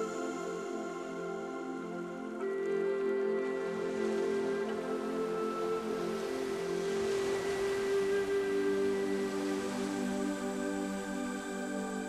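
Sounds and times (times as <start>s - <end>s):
ambient music with held chords: 0.0s - 12.0s
sea surf: 0.0s - 12.0s.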